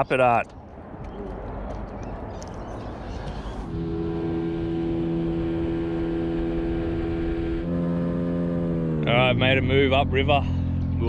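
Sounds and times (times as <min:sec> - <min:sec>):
outboard motor running: 0:03.7 - 0:07.9.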